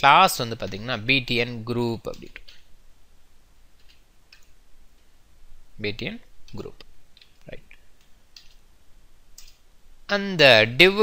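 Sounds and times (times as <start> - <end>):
faint keyboard keystrokes: 3.8 - 5.1, 6.5 - 8.6, 9.4 - 9.6.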